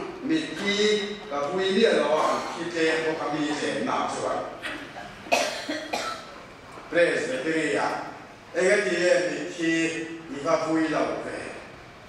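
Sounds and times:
person coughing: 2.1s - 2.7s, 4.6s - 6.4s.

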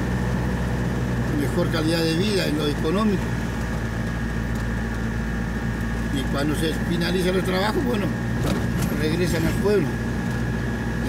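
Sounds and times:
truck engine droning: 0.0s - 11.0s.

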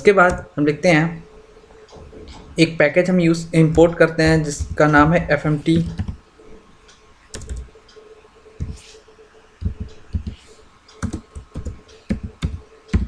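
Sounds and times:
keyboard key presses: 5.8s - 6.2s, 11.0s - 13.0s.

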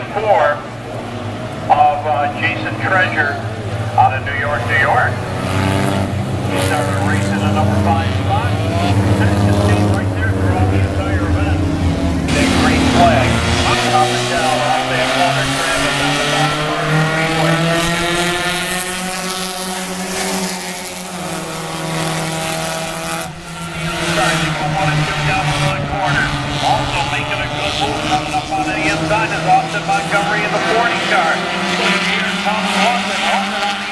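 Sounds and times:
stock car engines racing: 0.0s - 33.9s.

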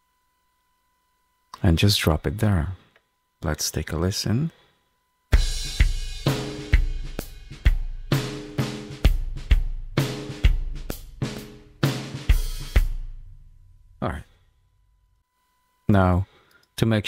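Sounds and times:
programmed drum beat: 5.3s - 13.5s.

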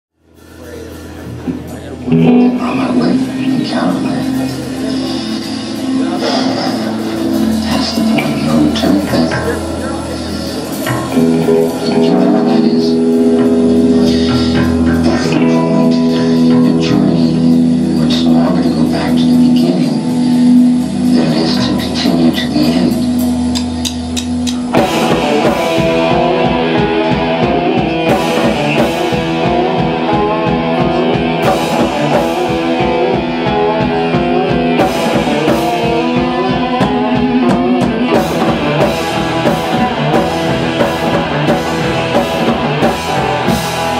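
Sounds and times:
surf punk rock band: 0.2s - 43.9s.

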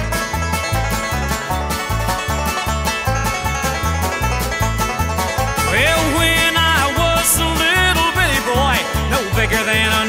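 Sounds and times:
bass line: 0.0s - 10.0s
plucked string notes: 0.0s - 10.0s.

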